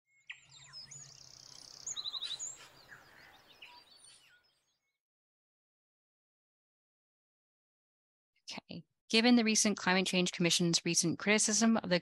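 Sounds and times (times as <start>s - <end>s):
birds chirping and whistling: 0.1s - 4.8s.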